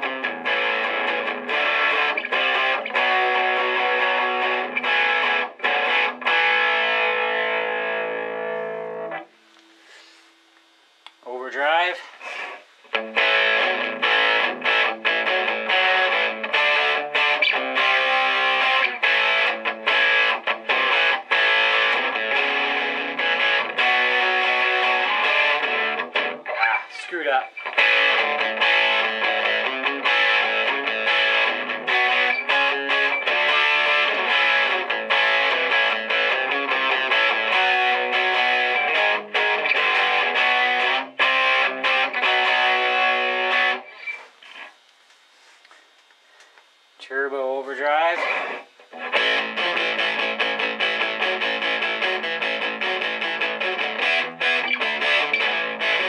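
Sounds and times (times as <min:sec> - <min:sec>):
overdriven electric guitar: 0:00.0 - 0:10.2, 0:12.2 - 0:44.7, 0:48.0 - 0:56.0.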